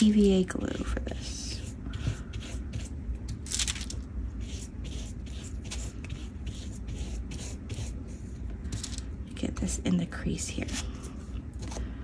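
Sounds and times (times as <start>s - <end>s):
brush strokes spreading glue: 0.7s - 3.0s, 4.4s - 8.5s.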